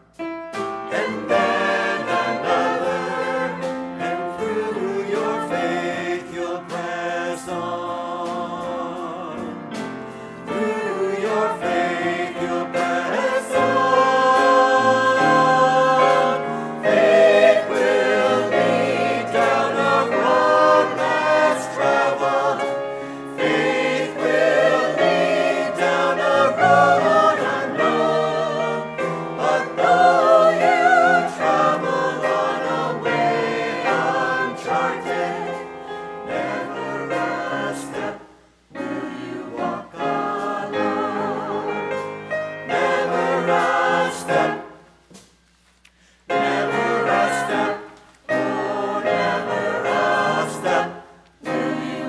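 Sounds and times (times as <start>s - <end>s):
upright piano: 0.0s - 45.0s, 46.3s - 52.0s
choir singing: 0.8s - 45.0s, 46.2s - 52.0s.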